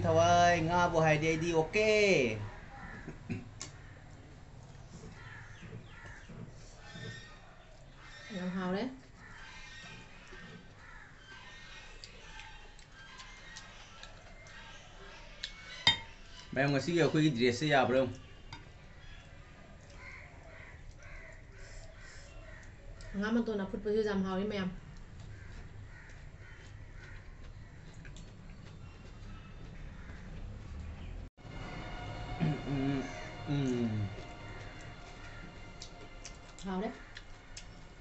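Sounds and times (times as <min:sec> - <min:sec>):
faint crow-like bird calls: 0:02.2 - 0:17.2, 0:17.8 - 0:38.0.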